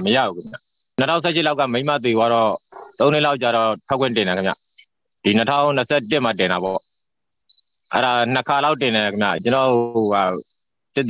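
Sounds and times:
man speaking: 0.0s - 6.8s, 7.9s - 10.4s.

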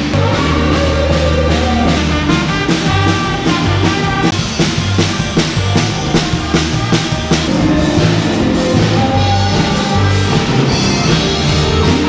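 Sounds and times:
drum kit steady beat: 0.0s - 12.0s
electric bass: 0.0s - 12.0s
electric guitar: 0.0s - 12.0s
keyboard: 0.0s - 12.0s
trumpets holding a line: 0.0s - 12.0s.

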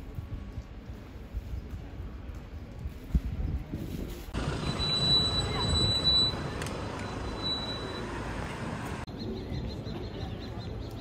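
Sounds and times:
traffic noise: 4.2s - 11.0s.

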